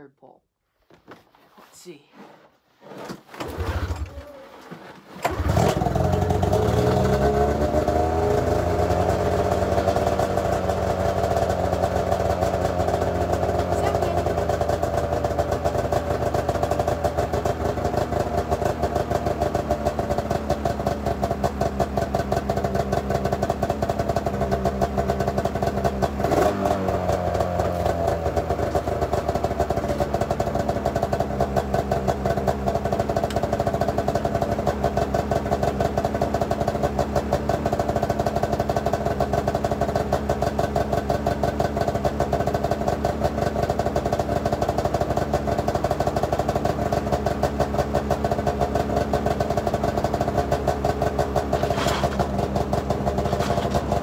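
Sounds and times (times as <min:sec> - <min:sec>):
snowmobile engine running: 0:03.5 - 0:54.0.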